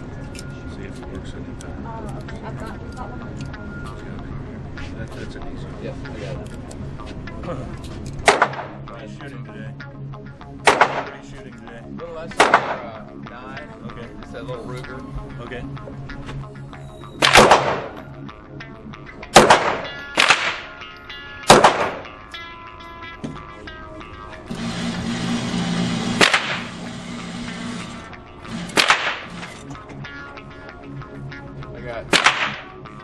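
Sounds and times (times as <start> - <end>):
pistol shots echoing: 10.7 - 11.2, 17.2 - 18.0, 19.4 - 20.7, 21.5 - 22.2, 26.2 - 26.6, 28.7 - 29.3, 32.1 - 32.7.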